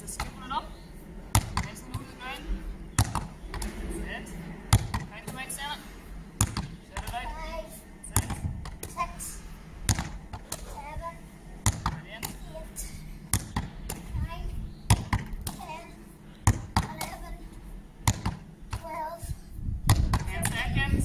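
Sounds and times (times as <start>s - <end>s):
ball smacking concrete wall: 1.3s - 2.1s, 3.0s - 3.8s, 4.7s - 5.6s, 6.4s - 7.3s, 9.8s - 10.8s, 11.6s - 12.5s, 13.3s - 14.2s, 14.9s - 15.7s, 16.4s - 17.2s, 18.0s - 18.9s, 19.9s - 20.6s.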